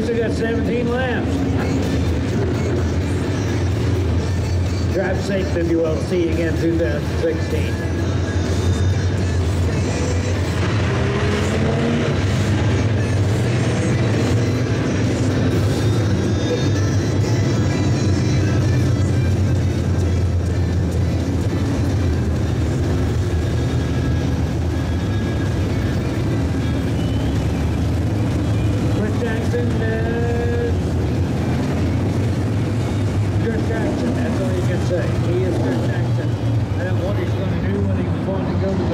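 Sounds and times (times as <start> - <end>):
music over loudspeakers: 0.0 - 38.9
race car engines droning: 0.0 - 38.9.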